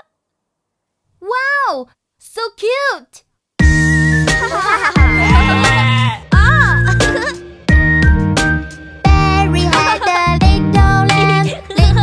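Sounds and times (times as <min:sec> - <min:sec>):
children's song backing track: 0:03.6 - 0:12.0
cartoon lamb bleating: 0:05.0 - 0:06.3.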